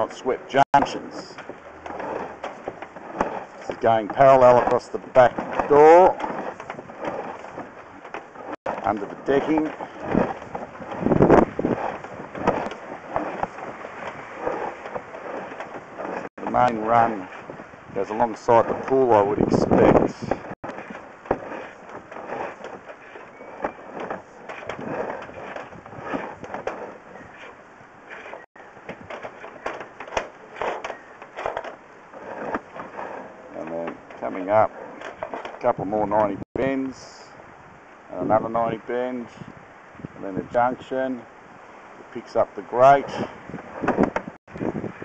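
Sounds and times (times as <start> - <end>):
push rod clicking and scraping in pipe: 0.5 - 36.3.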